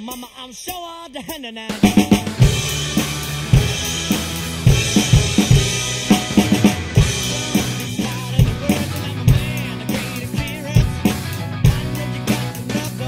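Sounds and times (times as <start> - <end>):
drum kit rock groove: 0.0 - 13.0
recorded rock song: 0.0 - 13.0.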